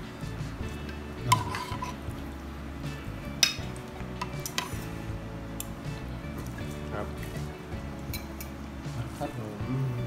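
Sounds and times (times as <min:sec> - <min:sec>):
music with held low notes: 0:00.0 - 0:10.0.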